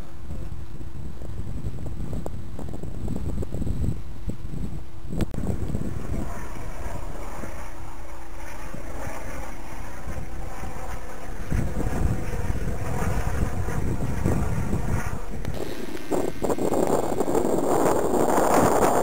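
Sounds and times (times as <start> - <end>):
distant model jet whine: 0.0 - 19.0
wind buffeting microphone: 0.0 - 19.0.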